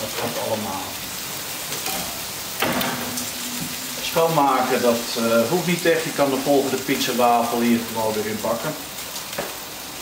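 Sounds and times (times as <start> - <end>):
waffle iron sizzling: 0.0 - 10.0.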